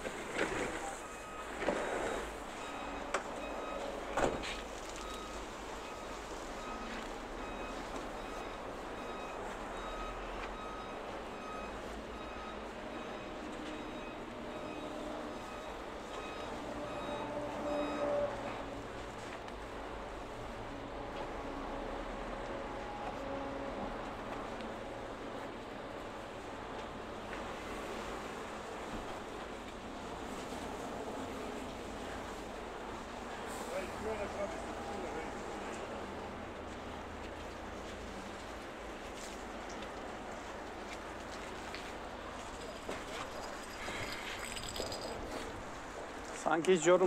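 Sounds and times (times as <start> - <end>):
outdoor background noise: 0.0 - 47.0.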